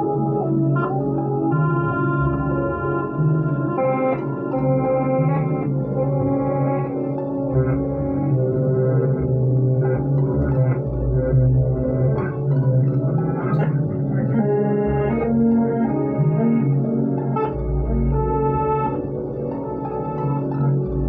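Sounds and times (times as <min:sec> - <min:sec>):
tapped guitar chords with effects: 0:00.0 - 0:21.0.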